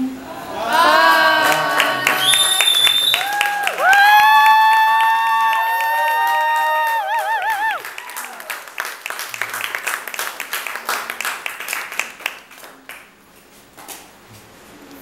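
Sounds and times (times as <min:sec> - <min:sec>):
audience clapping: 0:00.6 - 0:13.2.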